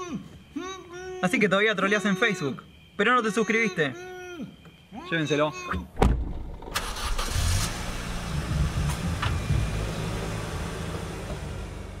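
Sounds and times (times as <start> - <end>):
sharp thump: 6.0 - 6.6
car engine running: 6.5 - 12.0.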